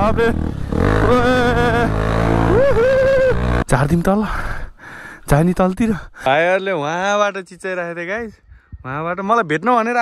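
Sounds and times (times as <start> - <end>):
motorcycle engine running: 0.0 - 3.7.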